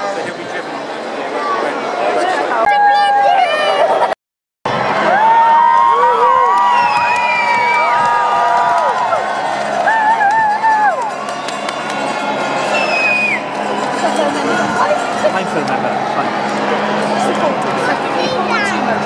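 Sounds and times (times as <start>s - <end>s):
crowd cheering and whooping: 2.5s - 18.6s.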